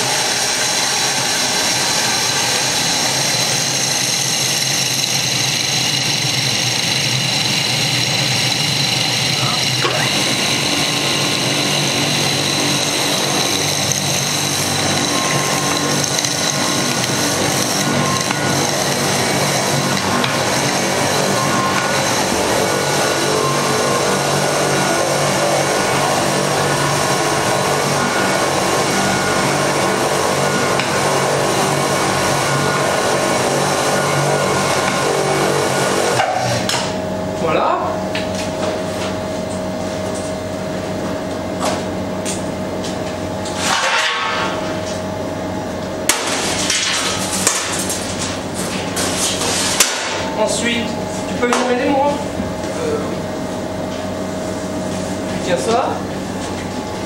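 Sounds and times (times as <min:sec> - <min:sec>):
deep rough grinding: 0:00.0 - 0:36.2
food processor motor whine: 0:00.0 - 0:38.2.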